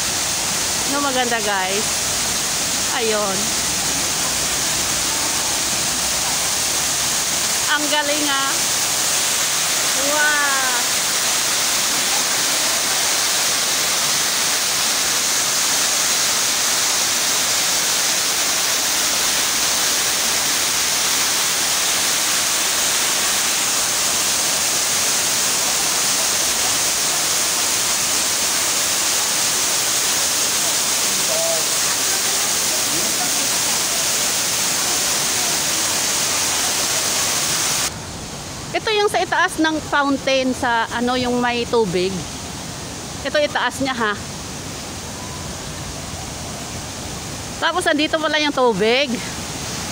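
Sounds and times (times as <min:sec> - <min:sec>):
waterfall rushing over rocks: 0:00.0 - 0:49.9.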